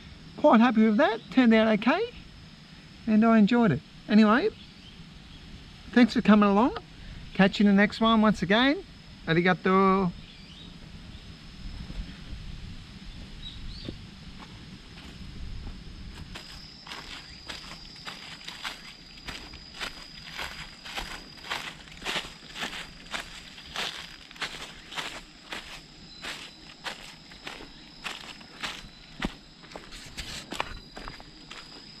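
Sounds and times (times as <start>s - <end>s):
footsteps on gravel path: 14.4s - 32.0s.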